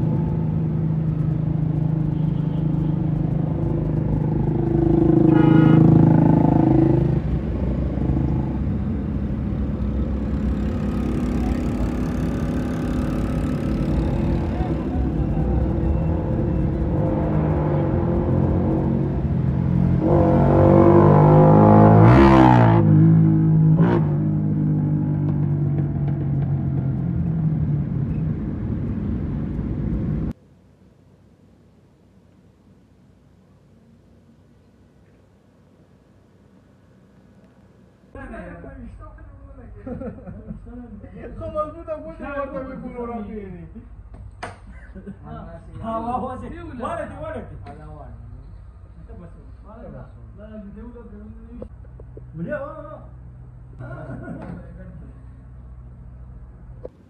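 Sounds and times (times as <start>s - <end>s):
motorcycles: 0.0s - 30.4s
vehicles revving or passing: 0.0s - 30.4s
car engine and road noise: 0.0s - 44.7s, 45.4s - 57.0s.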